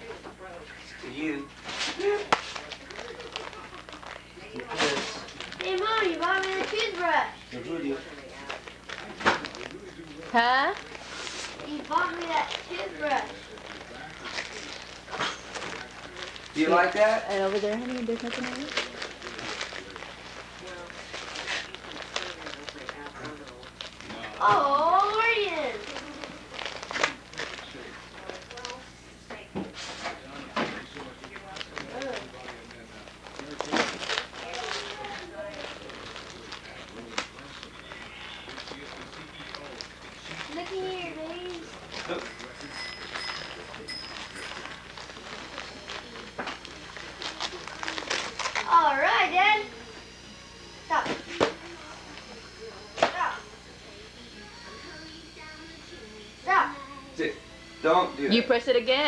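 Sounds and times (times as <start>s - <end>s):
voices: 0.0s - 59.0s
gift wrap rustling and crackling: 1.2s - 50.1s.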